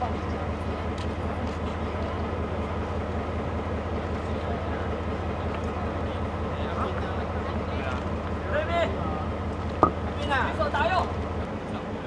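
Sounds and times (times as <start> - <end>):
diesel locomotive idling: 0.0 - 12.0.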